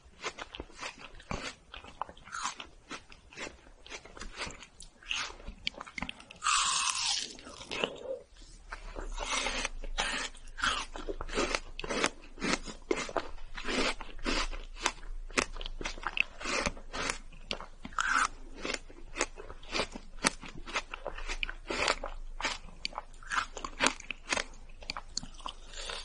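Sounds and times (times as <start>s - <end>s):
chewing ice cream bar: 0.0s - 26.0s.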